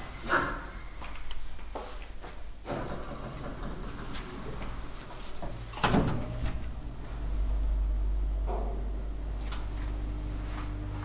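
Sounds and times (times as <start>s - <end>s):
low machine hum: 2.4s - 11.0s
elevator doors sliding closed: 2.6s - 11.0s.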